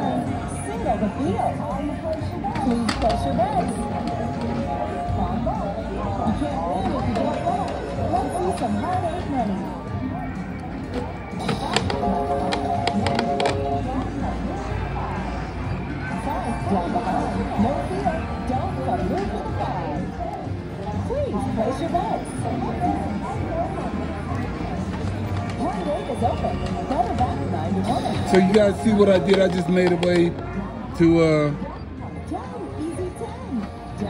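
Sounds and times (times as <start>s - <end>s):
casino chatter: 0.0s - 34.0s
music playing: 0.0s - 34.0s.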